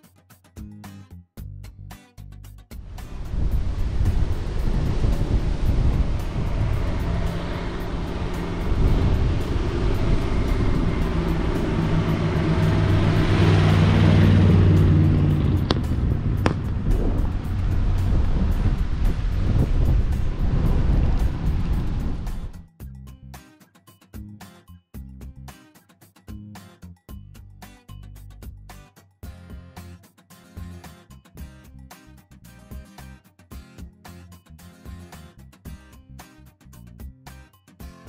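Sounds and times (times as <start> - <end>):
car engine driving past: 2.9 - 22.6.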